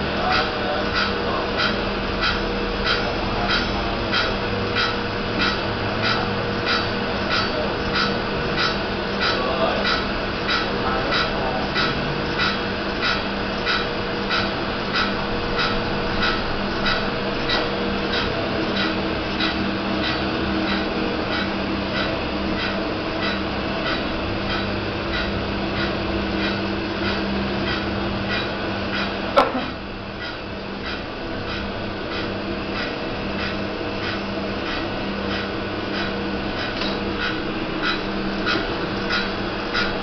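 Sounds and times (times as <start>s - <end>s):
machine motor hum: 0.0s - 40.0s.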